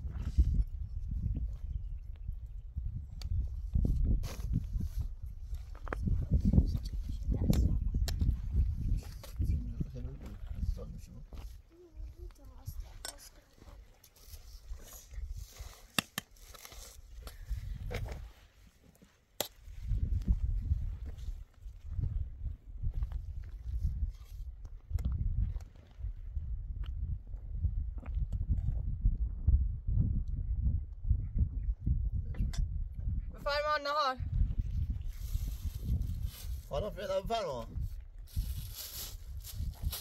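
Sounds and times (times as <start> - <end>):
wind buffeting microphone: 0.0 - 13.0, 17.0 - 18.4, 19.6 - 40.0.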